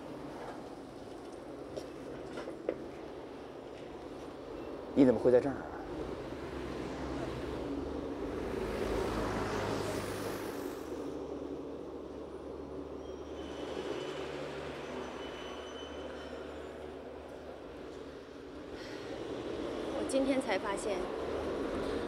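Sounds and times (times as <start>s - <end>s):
low traffic engine hum: 0.0s - 22.0s
vehicle passing: 5.8s - 11.7s.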